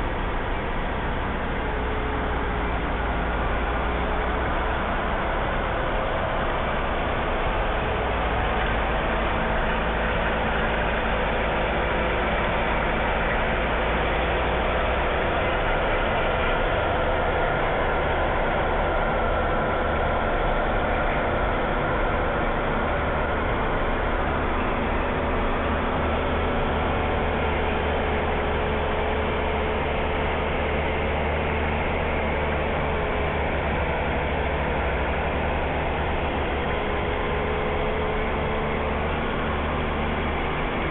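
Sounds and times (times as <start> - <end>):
tractor diesel engine running: 0.0 - 40.9.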